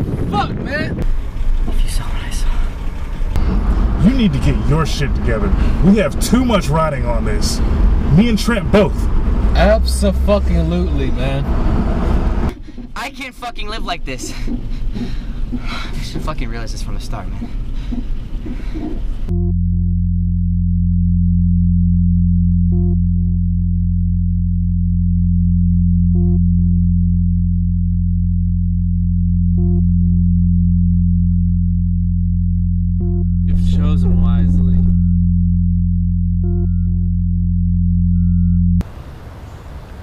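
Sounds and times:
synthesized low drone: 1.0 - 12.9, 16.9 - 38.9
electronic beeps: 33.0 - 35.6, 36.4 - 38.8.

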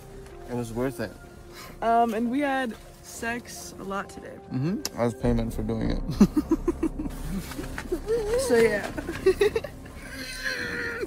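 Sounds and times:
person laughing: 6.1 - 11.0.

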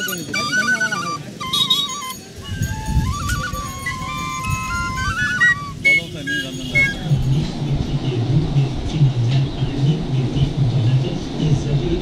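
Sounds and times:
bamboo flute melody: 0.0 - 7.4.

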